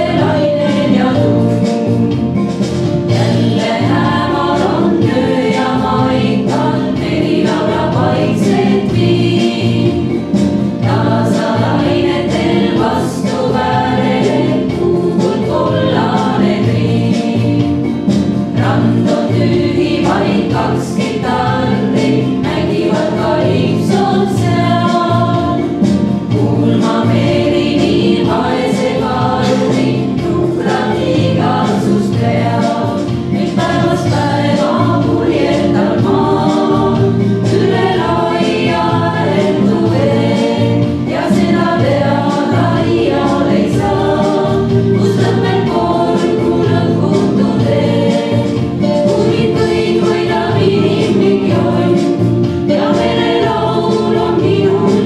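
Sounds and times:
women singing in harmony: 0.0 - 55.0.

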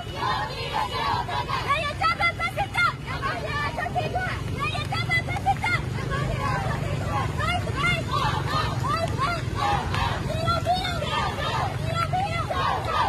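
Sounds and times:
crowd of women chanting: 0.0 - 4.2, 5.0 - 13.0.

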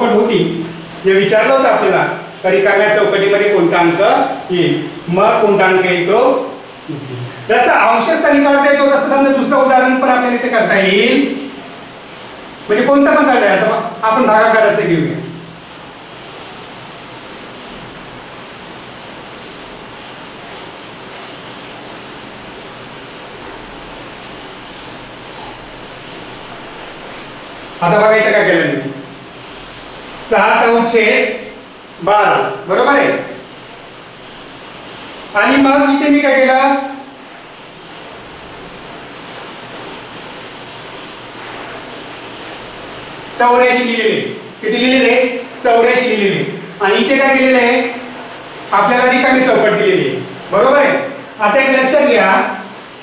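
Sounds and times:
steady background hiss: 0.0 - 53.0.

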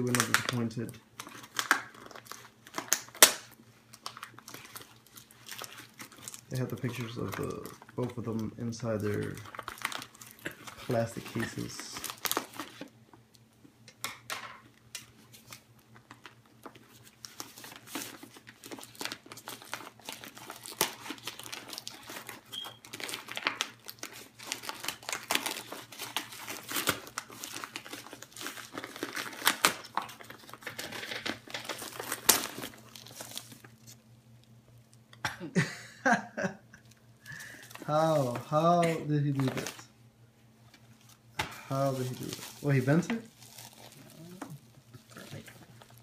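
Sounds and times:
plastic bag crinkling and tearing: 0.0 - 13.0, 15.0 - 35.0, 37.2 - 39.9, 40.8 - 46.0.

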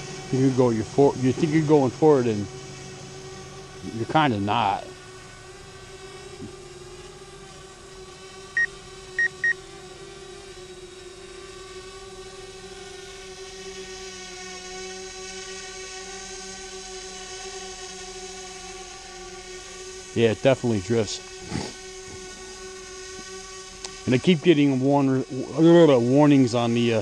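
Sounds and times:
drone propellers humming: 0.0 - 27.0
short high beeps: 9.2 - 9.6.

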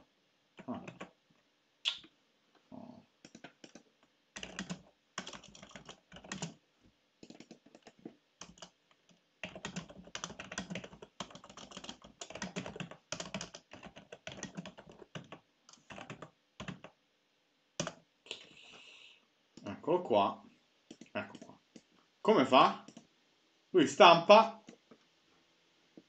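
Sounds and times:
computer keyboard typing: 0.6 - 1.1, 3.2 - 3.8, 4.4 - 6.6, 7.2 - 17.0, 17.8 - 18.0, 20.9 - 21.5.

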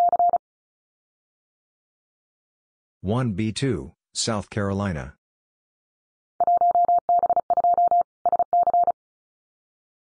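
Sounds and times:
morse code beeps: 0.0 - 0.4, 6.4 - 9.0.

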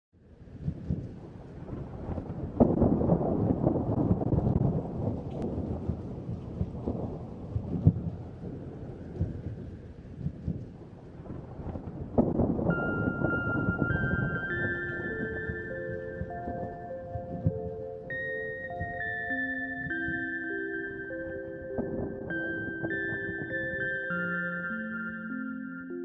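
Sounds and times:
steady rain: 0.2 - 24.8
thunder rumbling: 0.2 - 24.8
held music notes: 12.7 - 26.0.

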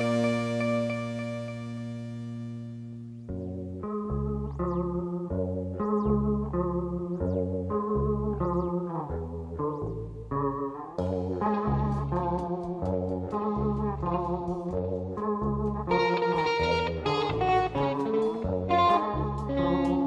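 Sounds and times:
bass guitar: 0.0 - 20.0
plucked guitar figure: 0.0 - 20.0.

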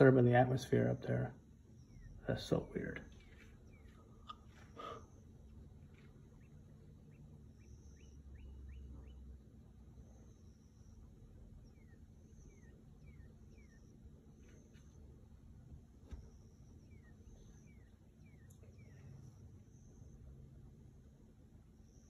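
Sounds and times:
faint birdsong: 0.0 - 22.0.

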